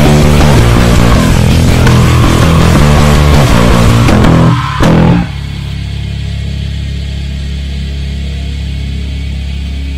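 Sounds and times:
heavy rock music: 0:00.0 - 0:09.9
low hum from bass amplifier: 0:00.0 - 0:09.9.

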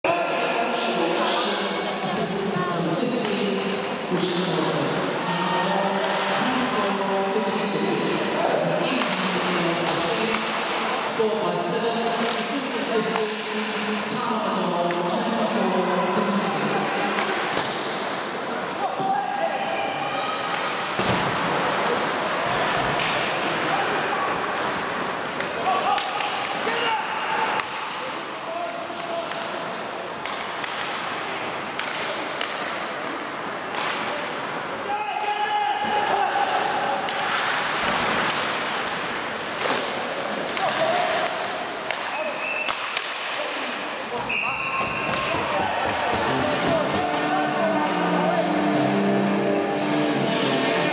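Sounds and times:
skates scraping on ice: 0:06.0 - 0:07.0, 0:35.9 - 0:42.2
hockey sticks and puck knocking: 0:30.2 - 0:34.2, 0:37.1 - 0:43.4, 0:44.8 - 0:47.3.

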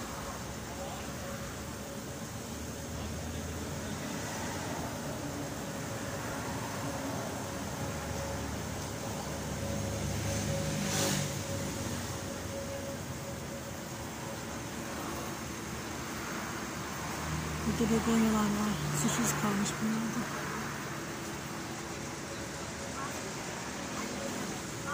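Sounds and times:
street traffic noise: 0:00.0 - 0:24.9
vehicle passing: 0:02.6 - 0:24.9.

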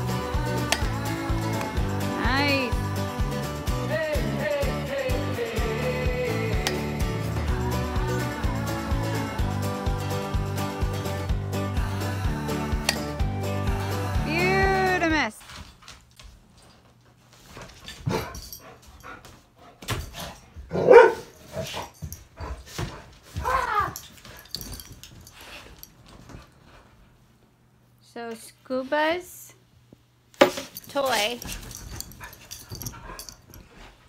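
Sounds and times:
background music with steady beat: 0:00.0 - 0:15.2
dog barking loudly: 0:20.7 - 0:21.3
broom knocking and scraping: 0:30.4 - 0:31.8.

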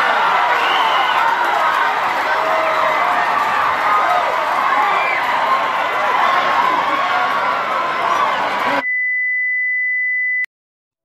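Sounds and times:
crowd of spectators: 0:00.0 - 0:08.8
high electronic beep: 0:08.8 - 0:10.5.

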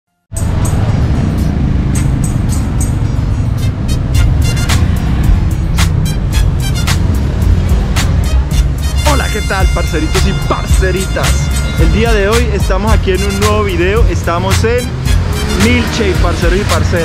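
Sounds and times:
music with heavy bass and beat: 0:00.3 - 0:17.0.

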